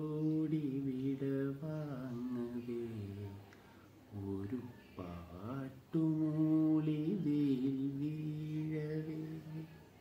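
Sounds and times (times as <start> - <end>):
man singing unaccompanied: 0.0 - 10.0.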